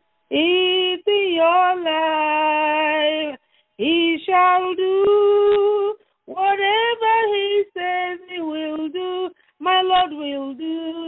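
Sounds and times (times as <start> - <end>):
woman singing over telephone: 3.8 - 11.0.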